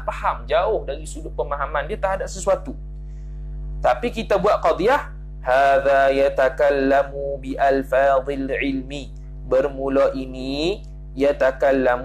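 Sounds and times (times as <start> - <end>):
man chanting recitation: 0.0 - 2.7, 3.8 - 12.0
steady low hum: 0.0 - 12.0.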